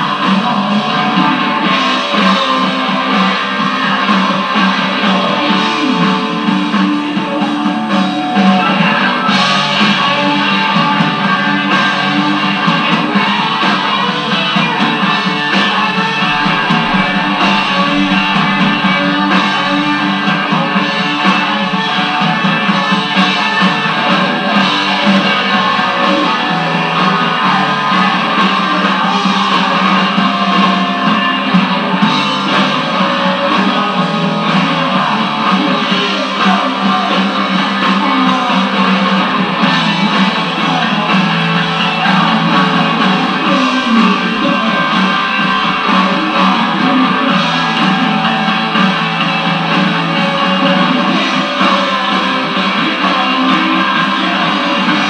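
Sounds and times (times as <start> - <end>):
guitars: 0.0 - 55.0
live rock band playing: 0.0 - 55.0.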